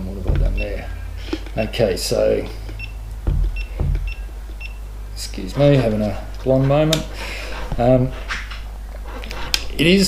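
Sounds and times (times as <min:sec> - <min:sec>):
dull knocks on plastic housing: 0:03.2 - 0:04.2.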